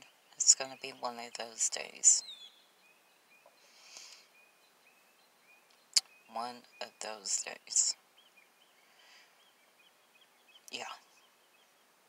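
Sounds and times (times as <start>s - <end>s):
faint bird chirps: 0.0s - 12.0s
soft breath-like hiss: 3.5s - 4.4s, 8.6s - 9.6s.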